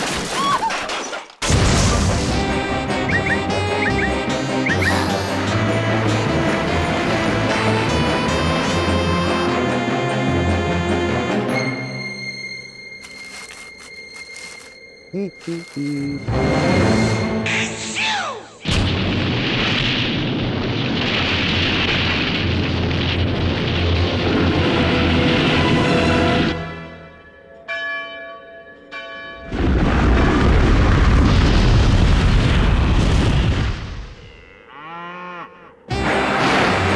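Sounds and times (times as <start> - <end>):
cartoon background music: 2.0 - 12.2, 14.4 - 18.6, 35.9 - 36.9
church bell ringing: 26.9 - 29.7.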